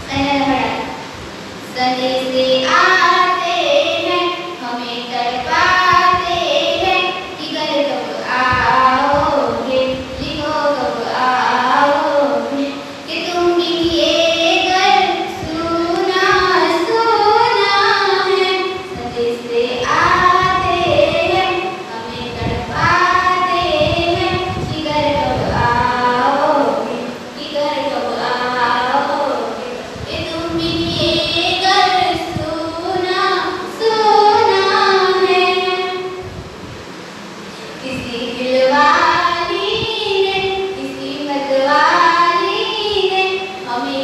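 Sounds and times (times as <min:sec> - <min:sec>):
woman singing into a microphone: 0:01.7 - 0:36.4, 0:37.8 - 0:44.0.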